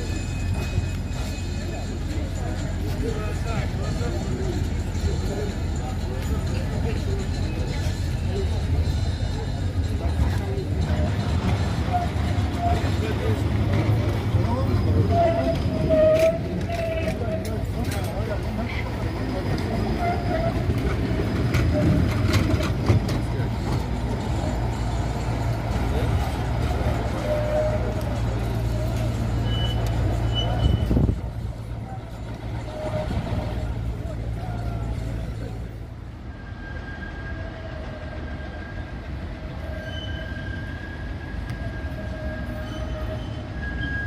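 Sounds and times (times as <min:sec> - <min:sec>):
outdoor background noise: 0:00.0 - 0:44.0
tram running hum: 0:00.0 - 0:44.0.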